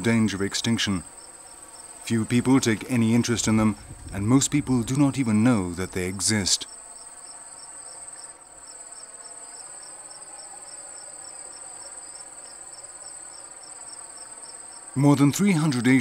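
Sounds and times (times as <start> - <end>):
insects chirping: 0.0 - 16.0.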